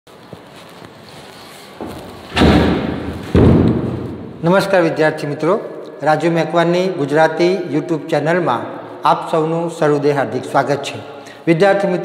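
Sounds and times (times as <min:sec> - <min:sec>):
heavy thuds with echo: 0:01.8 - 0:04.8.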